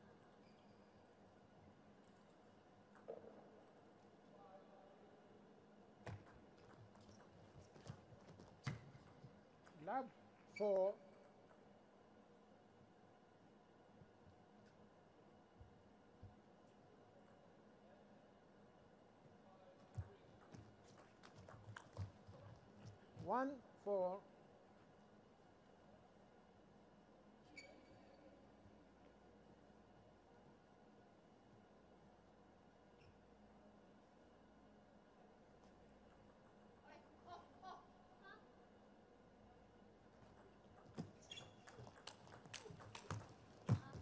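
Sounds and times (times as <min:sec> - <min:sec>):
table tennis ball tapping: 0:40.2 - 0:44.0.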